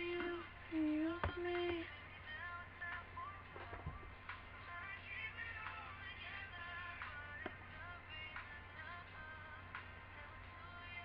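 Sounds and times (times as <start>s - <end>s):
faint song with singing: 0.0s - 11.0s
steady low hum: 0.0s - 11.0s.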